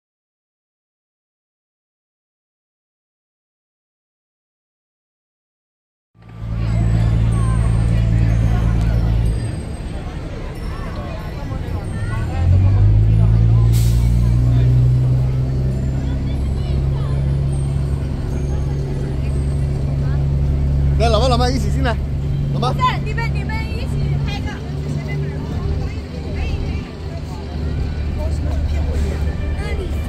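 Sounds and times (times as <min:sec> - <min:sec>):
bus diesel engine running: 0:06.2 - 0:30.0
passers-by talking: 0:06.2 - 0:30.0.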